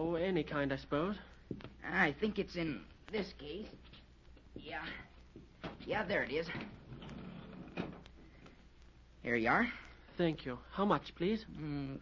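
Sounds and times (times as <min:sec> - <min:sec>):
recording hiss: 0:00.0 - 0:12.0
recording low hum: 0:00.0 - 0:12.0.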